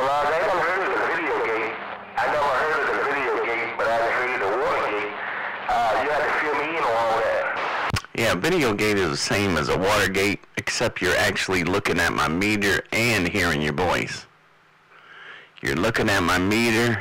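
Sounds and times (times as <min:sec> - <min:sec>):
man's voice over radio: 0:00.0 - 0:14.3, 0:15.6 - 0:17.0
radio static: 0:00.0 - 0:14.3, 0:15.6 - 0:17.0.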